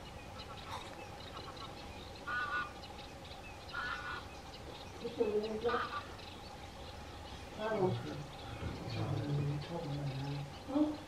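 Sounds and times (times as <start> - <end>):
short bird calls: 0.0 - 9.4
faint chirping of small birds: 0.0 - 11.0.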